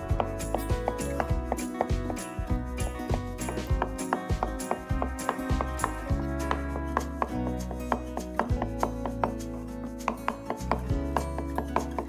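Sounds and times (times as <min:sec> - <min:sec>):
background music: 0:00.0 - 0:12.0
knife chopping on wooden board: 0:00.1 - 0:02.2, 0:02.8 - 0:09.4, 0:10.1 - 0:12.0.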